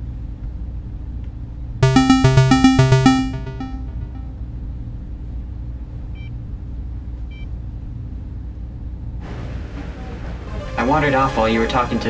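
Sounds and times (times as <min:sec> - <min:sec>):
bright sharp synth notes: 0:01.8 - 0:04.3
low synthesizer drone: 0:01.8 - 0:04.3.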